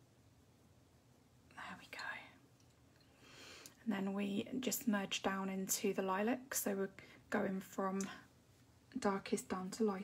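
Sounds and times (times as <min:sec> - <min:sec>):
breathy whisper: 0:01.5 - 0:02.4.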